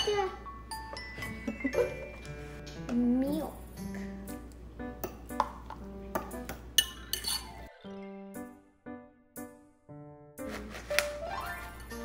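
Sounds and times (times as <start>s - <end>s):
light background music: 0.0s - 12.0s
fork scraping glass bowl: 6.8s - 7.5s.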